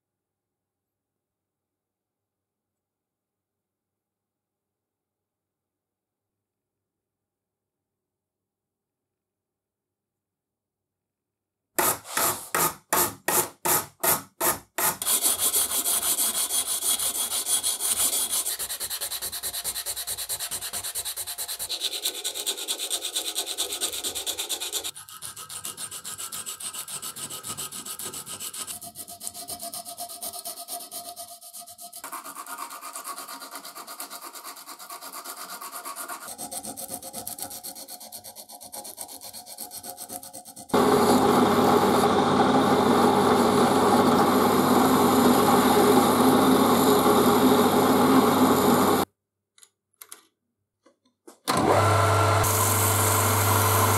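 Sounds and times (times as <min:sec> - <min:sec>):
abrasive strip sanding steel: 0:14.9 - 0:40.8
drill press running: 0:40.8 - 0:49.0, 0:51.5 - 0:53.9.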